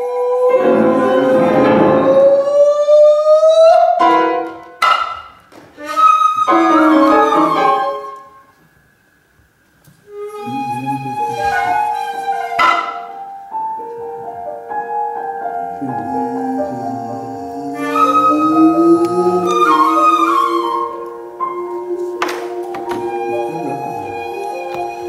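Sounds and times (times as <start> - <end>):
sparse piano notes and chords: 0.0 - 2.6, 10.1 - 25.0
bamboo flute note bending upward: 5.8 - 8.4, 10.1 - 13.4, 15.8 - 25.0.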